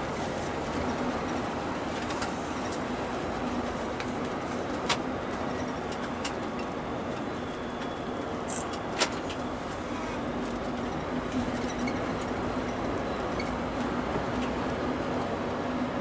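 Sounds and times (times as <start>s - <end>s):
road and engine noise: 0.0s - 16.0s.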